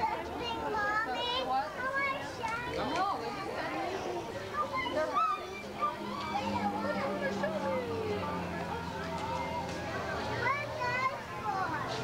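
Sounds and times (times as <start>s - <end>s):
children chattering and calling: 0.0s - 12.0s.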